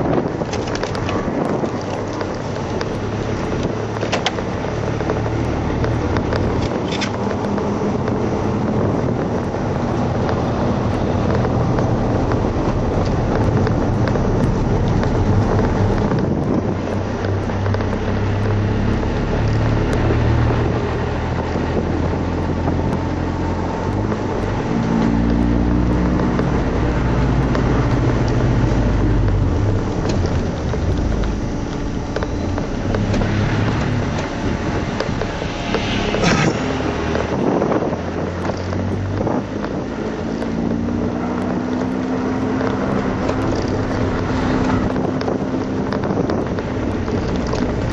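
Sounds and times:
car engine revving: 0.0s - 47.9s
tyre and road noise: 0.0s - 47.9s
wind noise: 0.0s - 47.9s.

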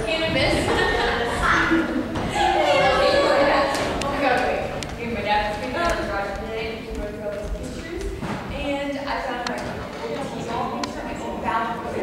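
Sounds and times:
actors speaking in a hall: 0.0s - 12.0s.

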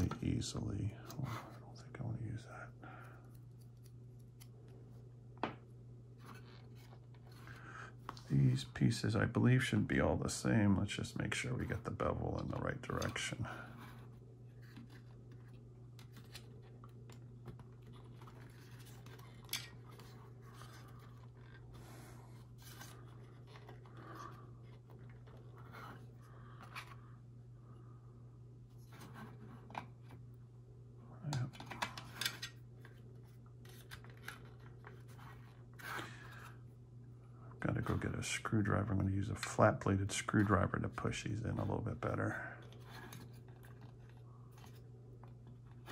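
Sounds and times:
steady low hum: 0.0s - 45.9s.

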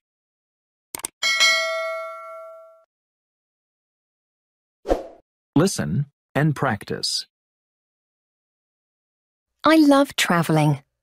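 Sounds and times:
bright bell ding: 1.2s - 2.9s.

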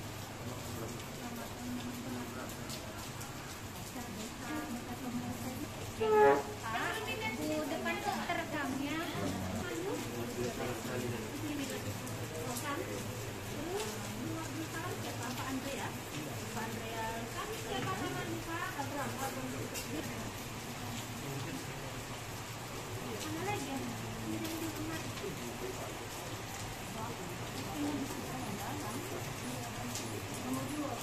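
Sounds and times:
background chatter of people: 0.0s - 31.0s
faint murmuring voices: 0.1s - 31.0s.

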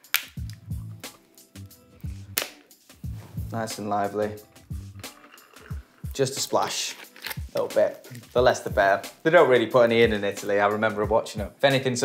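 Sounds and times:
quiet background music: 0.0s - 12.0s
plastic bottle cap unscrewing: 4.3s - 8.4s.

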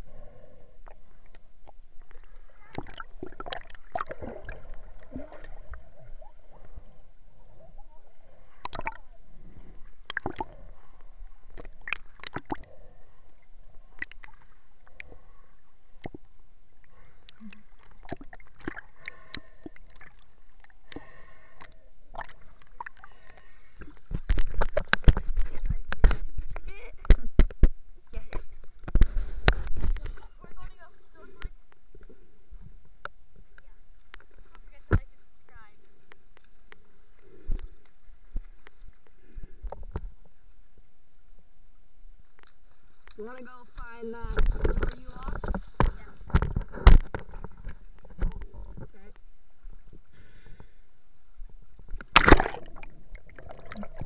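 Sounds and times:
water sloshing and splashing: 0.8s - 33.0s, 42.3s - 54.0s.

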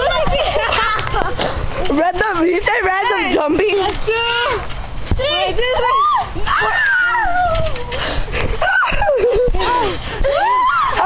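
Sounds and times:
camera shaking rumble: 0.0s - 10.3s
girl squealing: 5.8s - 7.7s, 8.6s - 11.0s
girl crying out: 8.6s - 11.0s.

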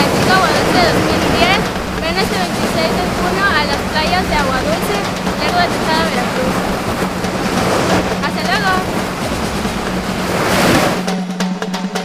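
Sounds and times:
wind buffeting microphone: 0.0s - 11.1s
surf washing onto beach: 0.0s - 11.4s.

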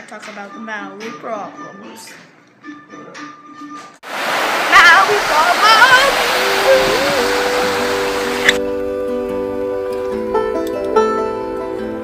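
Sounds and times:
rushing water: 4.0s - 8.6s
plucked guitar music: 6.6s - 12.0s.

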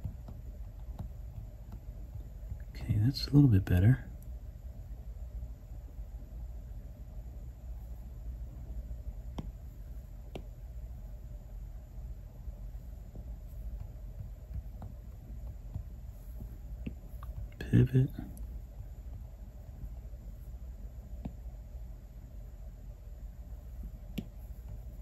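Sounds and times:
stylus tapping glass screen: 0.0s - 2.7s, 9.3s - 9.6s, 10.2s - 10.6s, 13.0s - 20.0s, 24.1s - 25.0s
low steady hum: 0.0s - 25.0s.

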